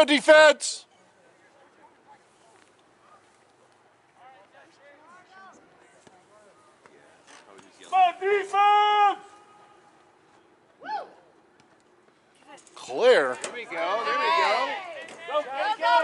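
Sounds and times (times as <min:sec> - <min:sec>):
people shouting: 0:07.9 - 0:09.5, 0:13.6 - 0:16.0
long held yell: 0:07.9 - 0:09.6, 0:10.8 - 0:11.2.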